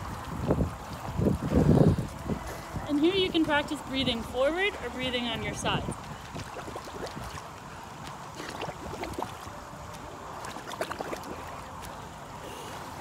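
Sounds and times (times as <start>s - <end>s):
pool water sloshing and lapping: 0.0s - 13.0s
small water splashes: 0.0s - 13.0s.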